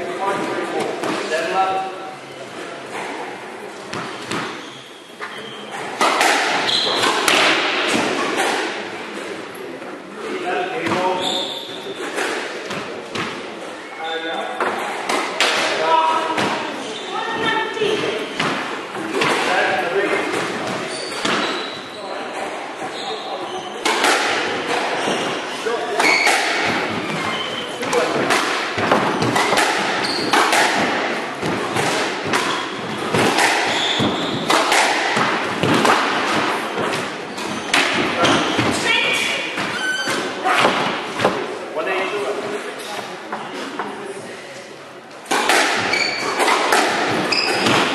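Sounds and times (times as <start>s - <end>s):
squash ball struck by rackets: 6.0s - 8.8s, 23.8s - 24.9s, 26.0s - 38.8s, 39.5s - 41.5s, 45.2s - 47.9s
ball thudding against walls: 26.0s - 38.8s.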